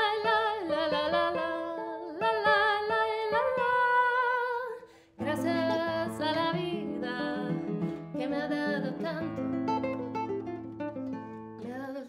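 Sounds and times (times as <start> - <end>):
fingerpicked classical guitar: 0.0 - 12.0.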